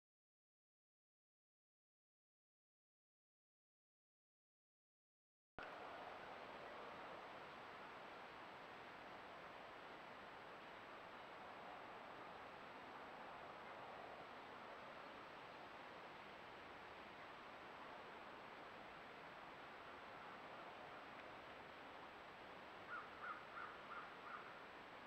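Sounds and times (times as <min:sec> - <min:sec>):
faint recording hiss: 0:05.6 - 0:25.0.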